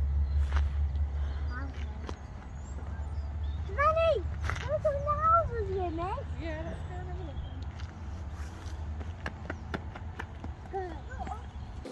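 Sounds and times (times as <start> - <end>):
low rumble outdoors: 0.0 - 11.9.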